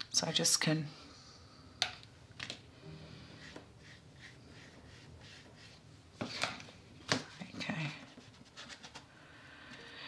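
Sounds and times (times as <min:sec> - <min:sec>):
brush on paper: 0:03.2 - 0:06.5, 0:07.3 - 0:09.0.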